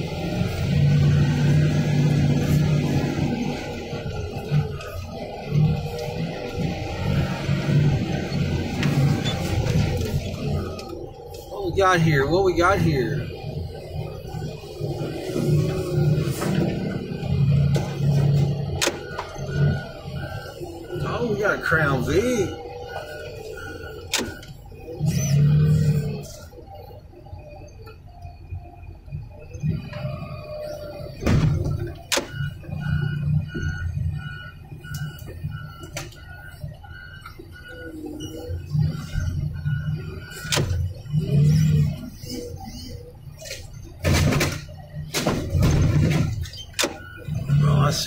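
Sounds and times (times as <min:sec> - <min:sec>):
excavator engine surging: 0:00.0 - 0:48.0.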